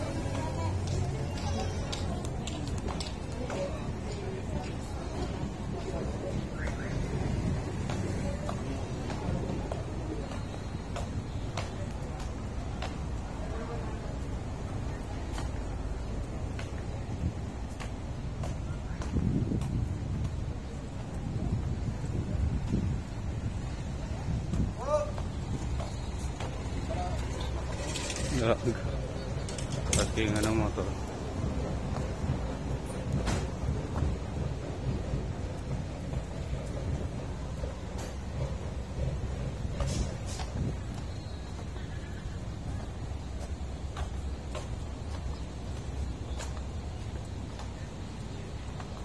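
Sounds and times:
footsteps on pavement: 0.0 - 49.0
traffic rumble: 0.0 - 49.0
wind: 0.0 - 49.0.

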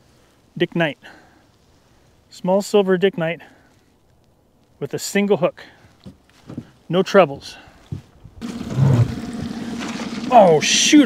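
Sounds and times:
rush of spilling noise: 8.4 - 10.9.

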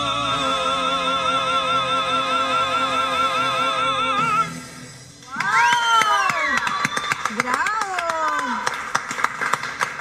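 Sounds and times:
audience clapping: 5.2 - 10.0.

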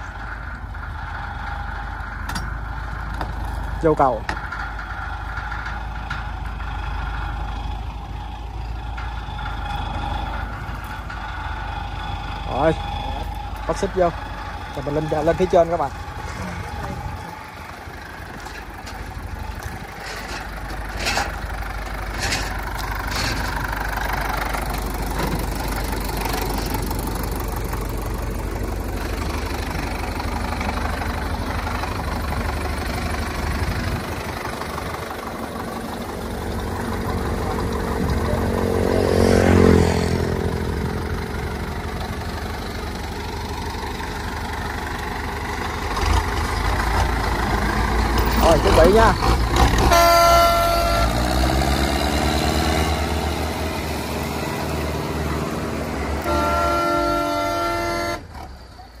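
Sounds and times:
tractor diesel engines under load: 0.0 - 59.0
horn blast: 49.8 - 51.5, 56.2 - 58.3.

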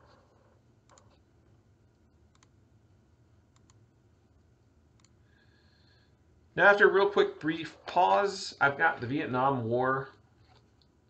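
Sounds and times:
faint computer clicks: 0.8 - 1.2, 2.3 - 2.6, 3.5 - 3.8.

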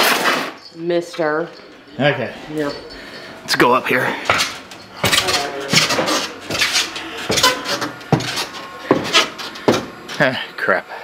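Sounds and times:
footsteps on wooden ladder: 4.1 - 10.0.

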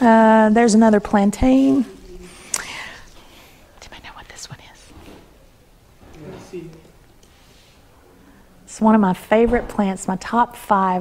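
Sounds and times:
person whispering: 3.8 - 4.9.

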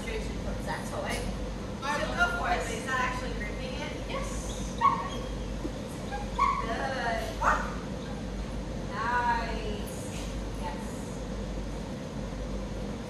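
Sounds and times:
room noise: 0.0 - 13.0
dog giving high-pitched cries: 4.2 - 8.3.

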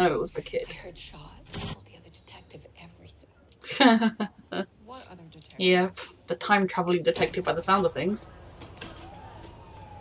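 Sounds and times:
faint whispering voice: 0.8 - 3.4.

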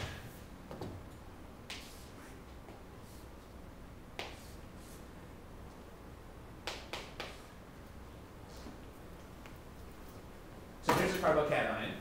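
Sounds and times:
chalk tapping on chalkboard: 1.7 - 2.1, 4.2 - 4.6, 6.6 - 7.5.

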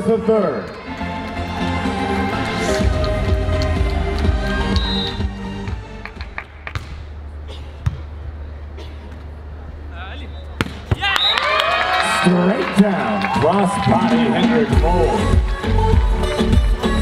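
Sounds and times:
music: 0.0 - 6.7, 13.3 - 17.0
volleyball slaps: 6.3 - 7.1, 10.6 - 11.2.

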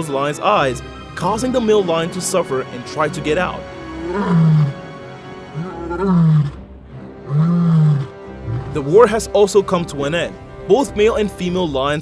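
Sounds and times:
music: 0.0 - 12.0
lion roaring: 3.8 - 8.9.

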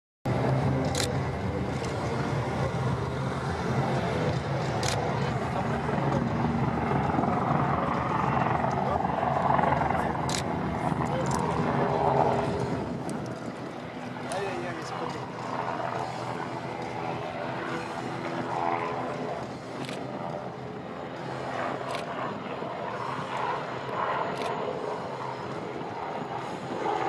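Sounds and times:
helicopter drone: 0.3 - 27.0
people's voices: 0.4 - 13.4.

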